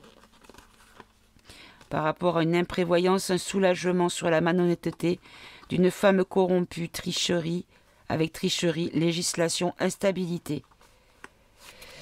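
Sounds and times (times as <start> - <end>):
cards being shuffled: 0.0 - 2.0
person speaking: 1.9 - 10.8.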